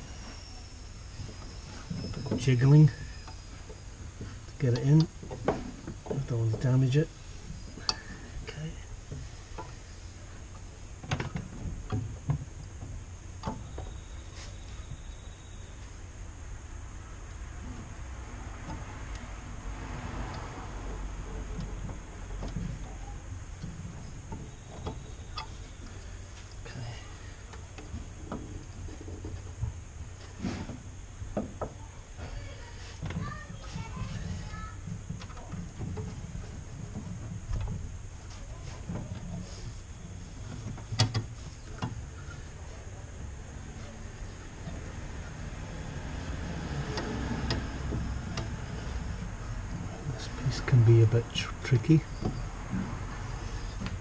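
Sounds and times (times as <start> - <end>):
low steady rumble: 0.0 - 54.0
metal clicks and knocks: 40.6 - 42.0.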